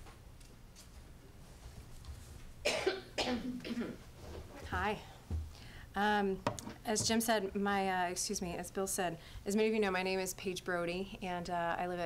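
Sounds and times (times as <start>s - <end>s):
woman coughing into a microphone: 2.6s - 4.0s.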